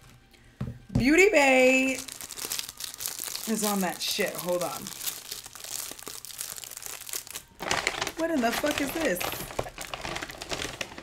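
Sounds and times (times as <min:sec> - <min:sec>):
plastic wrapping crinkling: 0:01.8 - 0:11.0.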